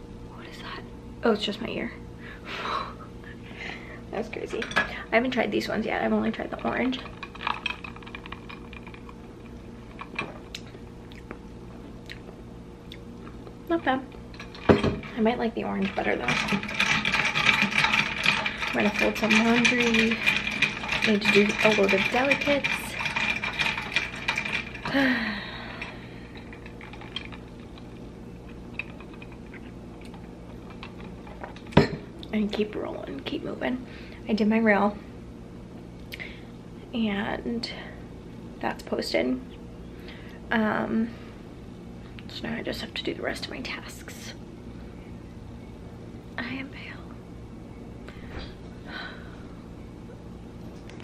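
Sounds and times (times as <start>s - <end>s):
low steady hum: 0.0s - 51.0s.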